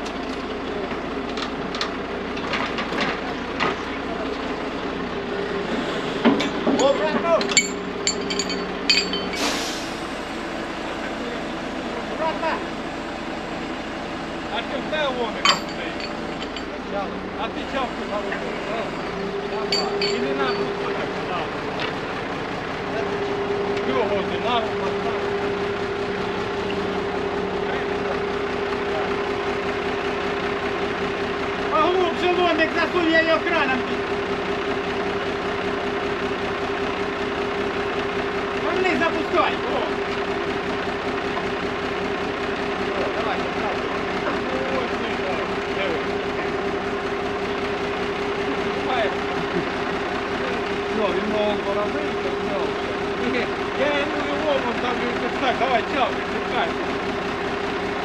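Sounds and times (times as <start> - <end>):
truck engine running: 0.0 - 58.0
metal clinks from hook: 6.8 - 9.5, 15.4 - 16.7, 19.7 - 20.8.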